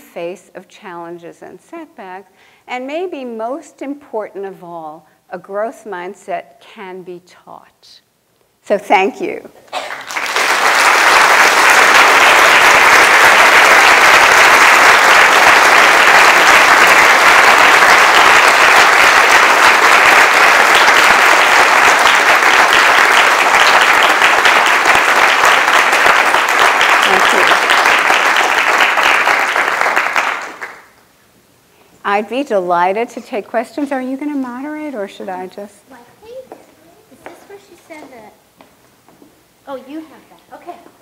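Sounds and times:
audience applauding: 0:09.7 - 0:31.0.

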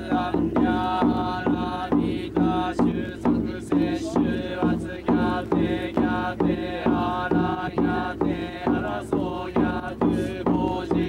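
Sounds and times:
voices chanting: 0:00.0 - 0:11.0.

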